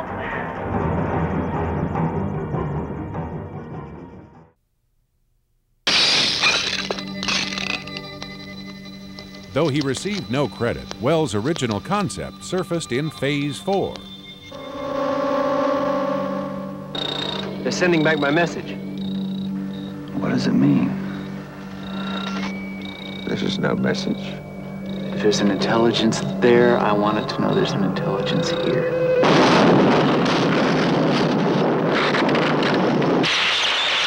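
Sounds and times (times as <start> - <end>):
low held musical tone: 7.8 - 29.3
low electronic hum: 13.9 - 30.4
loud crash with hiss: 33.2 - 34.0.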